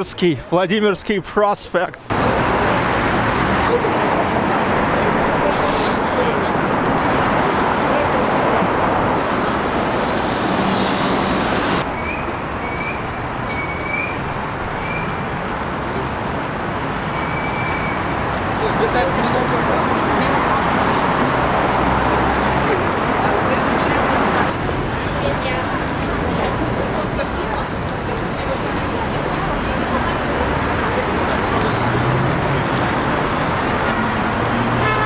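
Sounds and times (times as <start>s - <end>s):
city street traffic: 0.0s - 35.0s.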